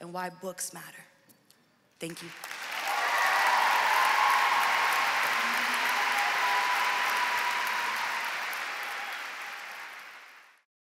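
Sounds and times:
audience applauding: 0:02.1 - 0:10.7.

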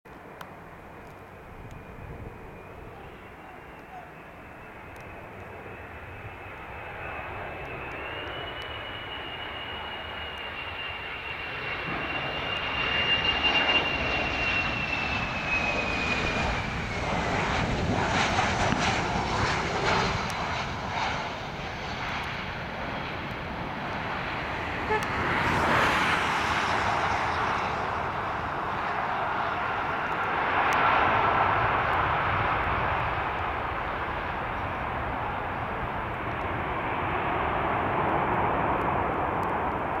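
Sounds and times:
jet engine whine: 0:00.1 - 0:40.0
rushing jet engine noise: 0:00.1 - 0:40.0.

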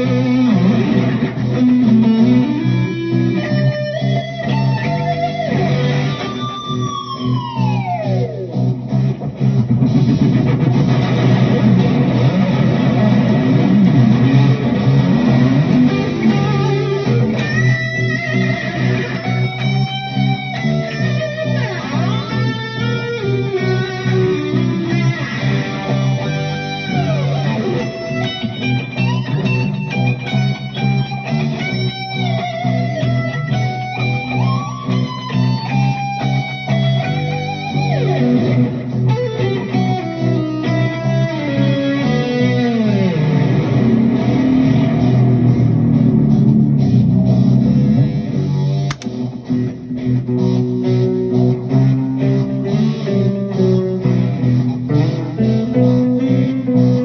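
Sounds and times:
electric guitar lead with delay: 0:00.0 - 0:57.0.

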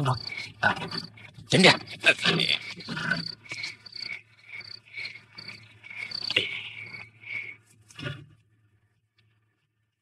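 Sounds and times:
crickets chirping: 0:00.0 - 0:07.7.

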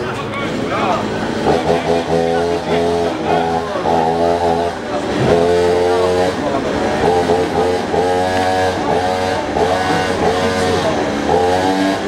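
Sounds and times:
engine pitch rising and falling: 0:00.0 - 0:12.0.

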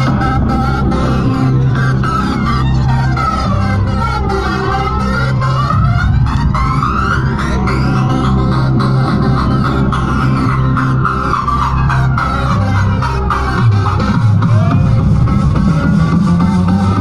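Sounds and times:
high synth sweeps: 0:00.0 - 0:16.8
loud techno dance music: 0:00.0 - 0:17.0.

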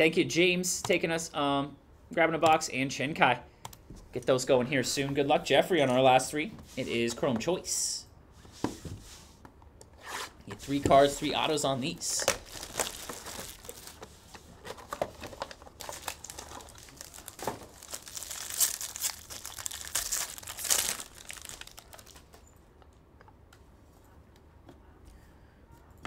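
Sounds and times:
foil and plastic packaging tearing: 0:12.2 - 0:14.0, 0:14.8 - 0:22.4.

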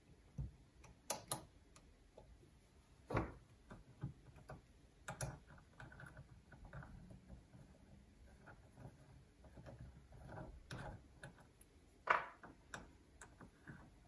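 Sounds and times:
allen key metallic clicks: 0:00.8 - 0:01.9.

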